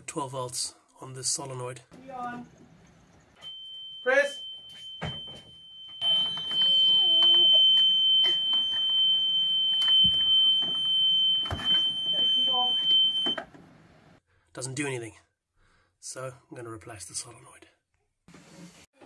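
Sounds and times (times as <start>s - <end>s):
high-pitched electronic warning buzzer: 4.3s - 13.4s.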